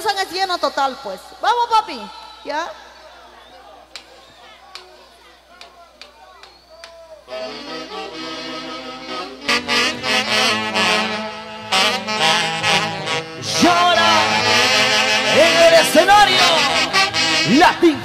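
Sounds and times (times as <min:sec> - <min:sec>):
faint voices: 0:02.8 - 0:07.5
brass and saxophone band: 0:07.2 - 0:18.0.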